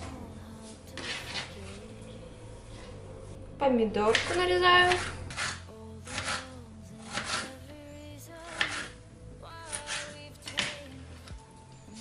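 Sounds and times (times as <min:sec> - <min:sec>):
background music with held notes: 0:00.0 - 0:12.0
knife slicing on cutting board: 0:08.5 - 0:08.9.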